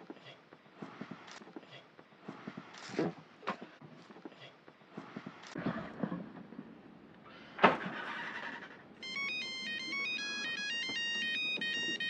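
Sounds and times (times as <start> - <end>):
phone ringtone melody: 9.0 - 12.0.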